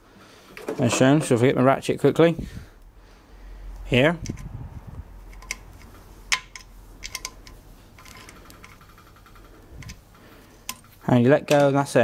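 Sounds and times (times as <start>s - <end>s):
small metal clicks and taps: 5.3s - 8.8s
ratchet clicking: 5.3s - 10.0s.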